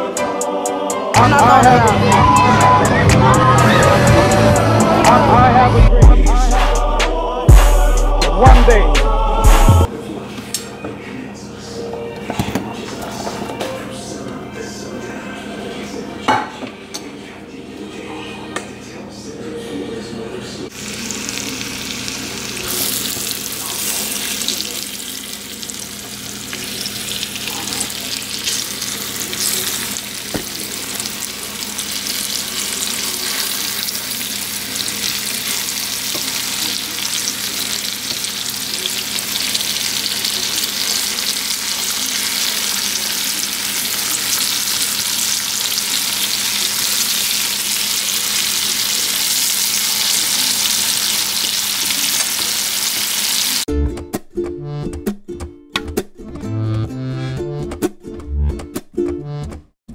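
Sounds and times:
onions sizzling in oil: 20.7s - 53.7s.

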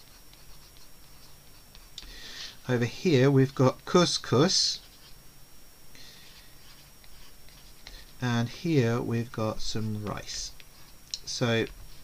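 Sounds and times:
pencil scratching on paper: 0.0s - 2.0s, 4.6s - 5.2s, 6.2s - 8.3s, 11.7s - 12.0s.

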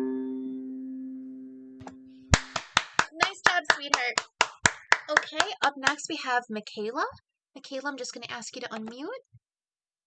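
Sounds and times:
piano chord: 0.0s - 2.1s
hand clapping: 2.3s - 6.1s.

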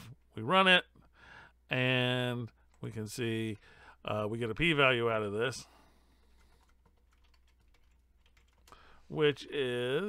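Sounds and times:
keyboard typing: 6.2s - 8.8s.

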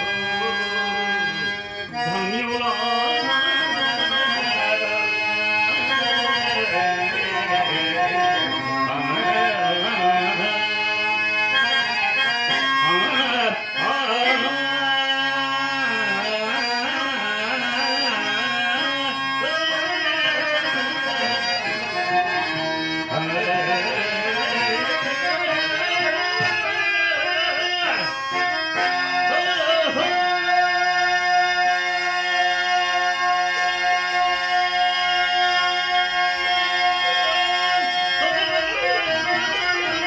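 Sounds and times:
harmonium: 0.0s - 40.0s
person singing melismatic verse: 0.0s - 40.0s
tabla: 0.0s - 40.0s.

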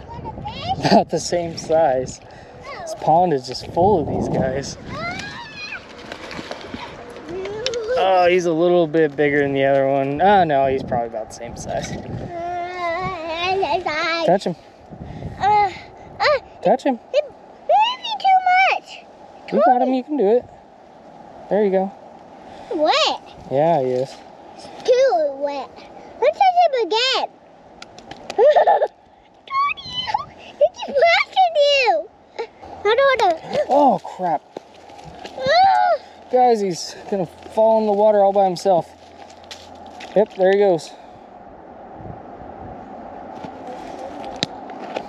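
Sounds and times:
boy crying out: 4.8s - 5.8s, 7.3s - 8.4s, 12.3s - 13.4s, 15.4s - 16.5s, 29.5s - 31.3s, 35.4s - 36.2s.

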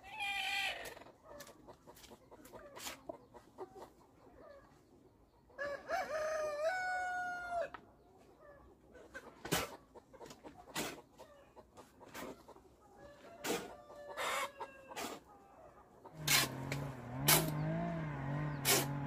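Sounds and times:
hens clucking: 0.0s - 5.6s, 7.7s - 19.0s
rooster crowing: 5.6s - 7.7s
hoe scraping through wet cement: 16.1s - 19.0s.

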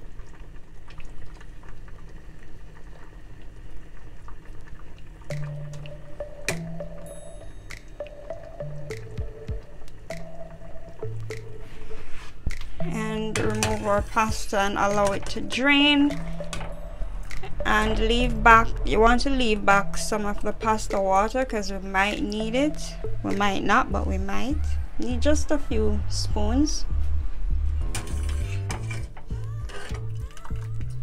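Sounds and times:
water boiling in pot: 0.0s - 25.6s
background music: 5.3s - 31.0s
person speaking: 12.8s - 16.3s, 17.2s - 26.9s.

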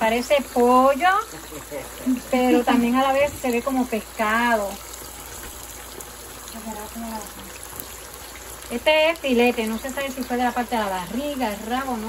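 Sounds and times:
meat sizzling in hot oil: 0.0s - 12.0s.

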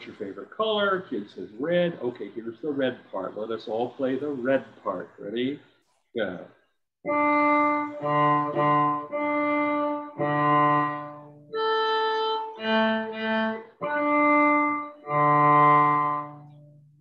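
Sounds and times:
cello bowed slowly: 7.1s - 16.6s.

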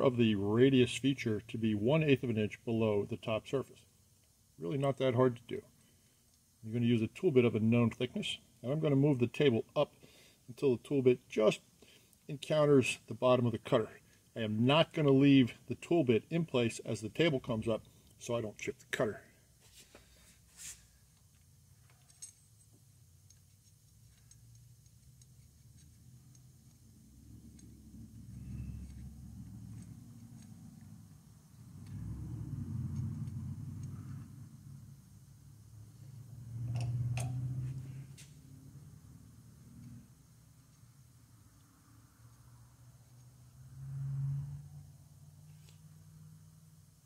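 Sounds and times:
milling machine low rumbles: 24.1s - 42.0s.

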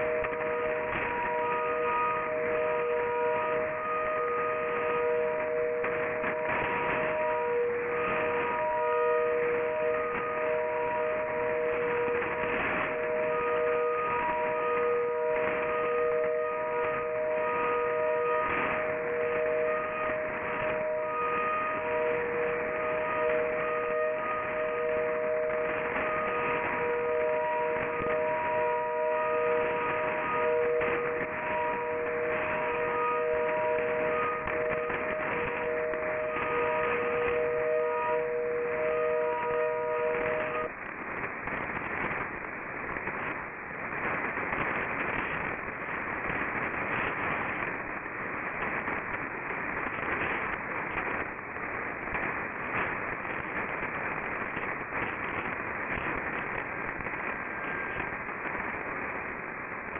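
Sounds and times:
faint higher radio tones: 0.0s - 59.9s
radio static: 0.0s - 59.9s
steady low radio tones: 0.0s - 59.9s.

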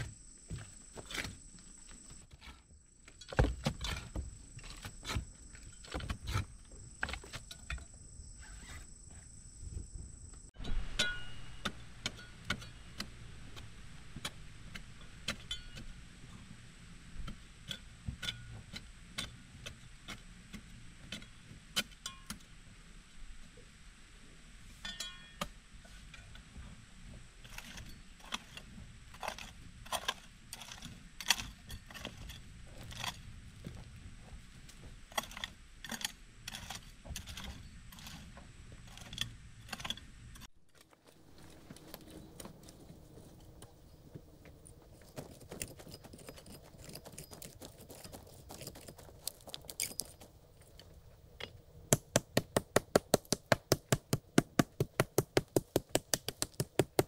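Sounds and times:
hoe striking soil and stones: 0.0s - 8.9s, 10.5s - 22.6s, 24.8s - 57.0s
dirt scraping and crumbling: 0.0s - 22.5s, 24.7s - 57.0s.

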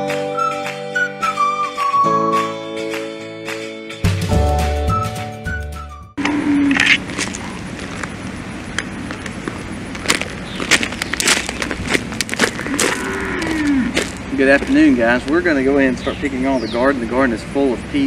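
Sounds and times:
outdoor noise haze: 6.2s - 18.0s
man talking: 14.3s - 18.0s.

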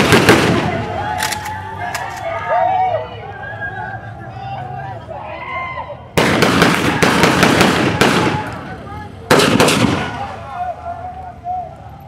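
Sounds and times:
gunshots with echoing tail: 0.0s - 0.8s, 6.2s - 8.5s, 9.3s - 10.2s.

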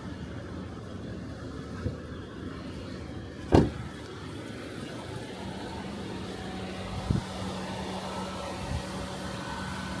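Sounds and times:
low mechanical hum: 0.0s - 10.0s
sharp thump: 3.5s - 3.8s.

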